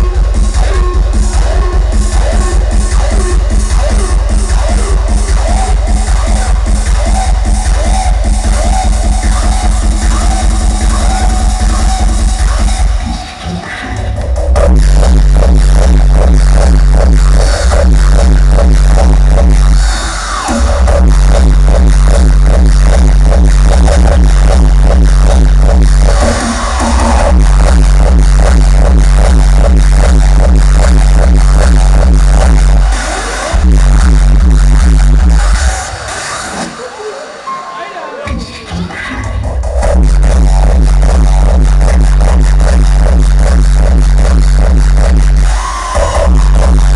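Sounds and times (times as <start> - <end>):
loud dance music over pa: 0.0 - 46.9
heavy kick drum: 14.2 - 19.7, 20.6 - 32.8, 39.6 - 45.4.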